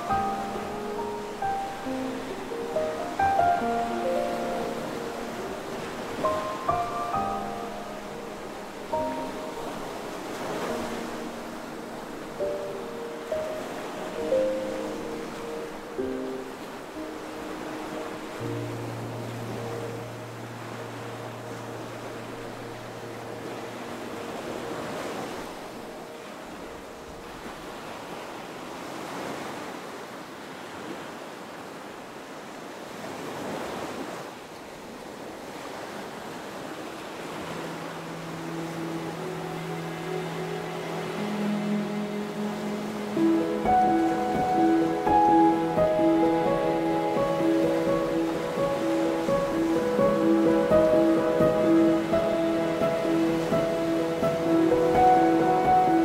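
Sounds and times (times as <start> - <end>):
soft background music: 0.0 - 27.9, 37.0 - 56.0
plucked melody: 38.9 - 56.0.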